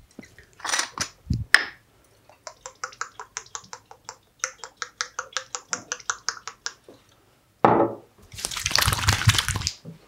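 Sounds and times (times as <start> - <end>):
palms rubbing wet liquid: 8.3 - 9.8.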